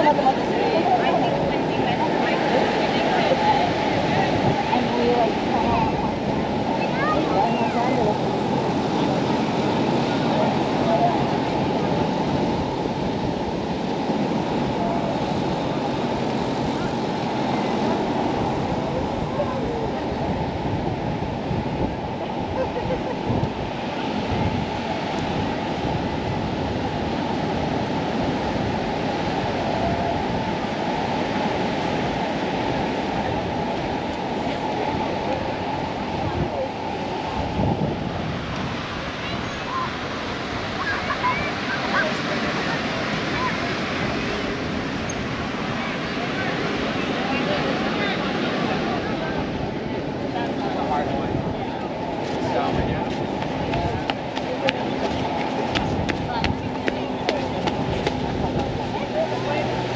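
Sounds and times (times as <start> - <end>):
ocean surf: 0.0 - 59.9
people's voices: 0.0 - 59.9
wind noise on microphone: 0.0 - 59.9.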